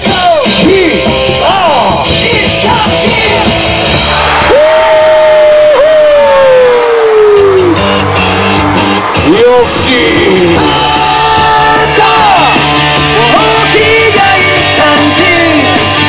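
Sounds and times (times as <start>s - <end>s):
cheer music over loudspeakers: 0.0s - 16.0s
crowd singing and yelling: 8.2s - 16.0s.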